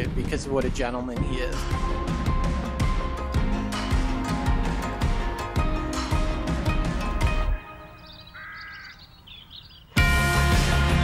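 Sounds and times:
music: 0.0 - 8.8, 9.9 - 11.0
high bird chirps: 7.5 - 10.1
bird call: 7.6 - 10.0.

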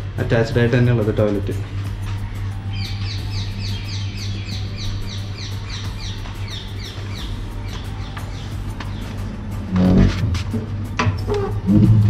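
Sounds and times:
steady low hum: 0.0 - 12.0
bird chirping: 2.1 - 10.1.

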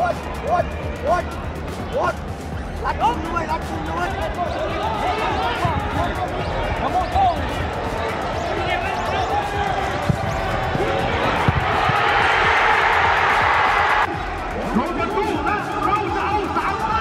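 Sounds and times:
men's voices: 0.0 - 13.0, 14.1 - 17.0
ball being kicked: 10.0 - 12.3.

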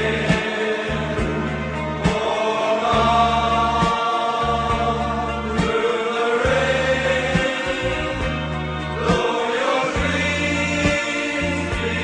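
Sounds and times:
sustained choral voices: 0.0 - 12.0
low pulsing bass beat: 6.5 - 9.2.

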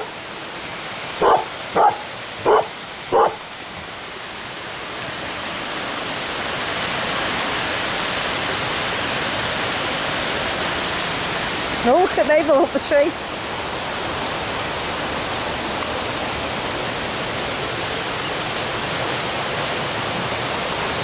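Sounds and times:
rocky stream rushing: 0.0 - 21.0
dog barking: 1.2 - 3.4.

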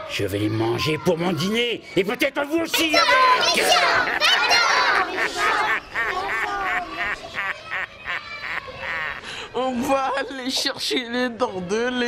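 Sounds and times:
young children shouting: 2.7 - 9.2.

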